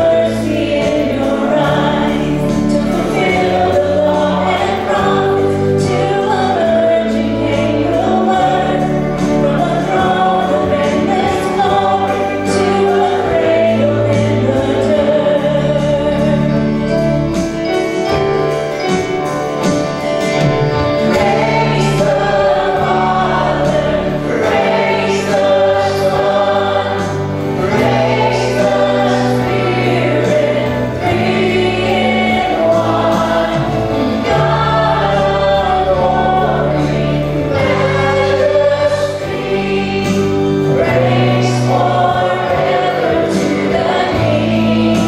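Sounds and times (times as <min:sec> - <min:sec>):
acoustic guitar: 0:00.0 - 0:45.0
organ: 0:00.0 - 0:45.0.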